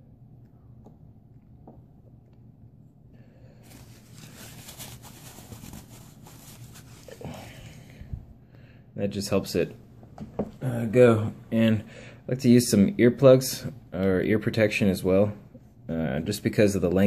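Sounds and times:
low steady hum: 0.0 - 17.0
soft rustling of hands: 3.5 - 8.3.

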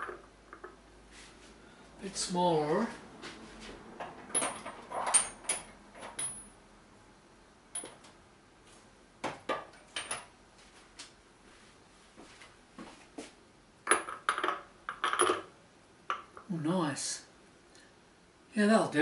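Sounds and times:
metal tools clinking: 4.3 - 6.5.

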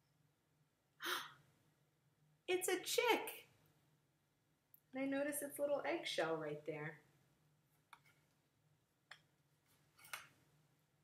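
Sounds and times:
woman gasping: 1.0 - 1.4.

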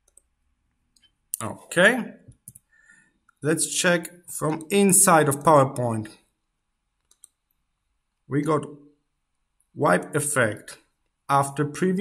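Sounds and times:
computer mouse clicks: 0.0 - 0.3, 7.0 - 7.4.

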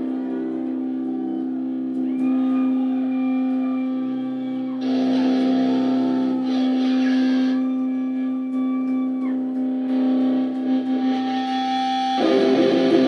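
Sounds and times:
guitar feedback tones: 0.0 - 13.0
distorted electric guitar drone: 4.8 - 13.0.

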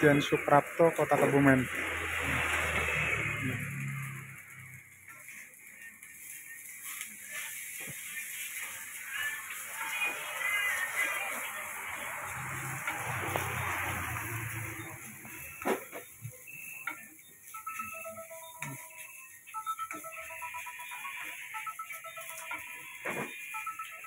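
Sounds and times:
rice sizzling in a wok: 0.0 - 24.0
electronic ringtone tune: 8.4 - 24.0.

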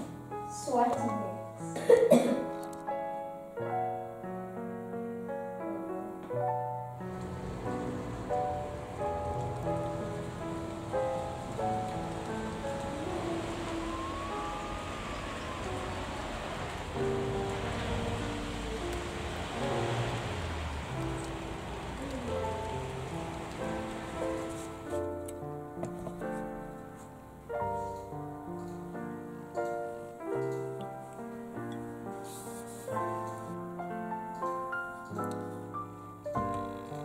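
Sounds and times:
gentle piano music: 0.0 - 37.0
steady rain: 6.8 - 37.0.

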